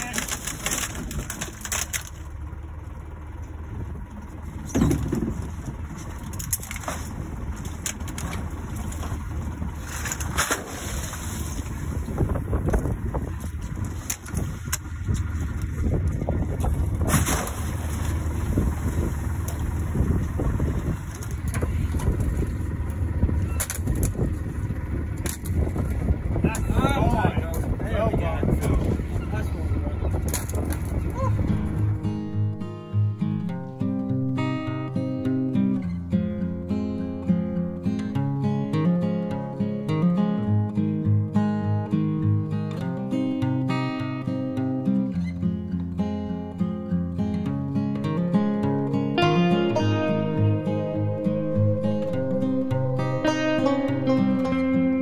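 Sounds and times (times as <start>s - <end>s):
boat engine idling: 0.0s - 39.5s, 40.2s - 55.0s.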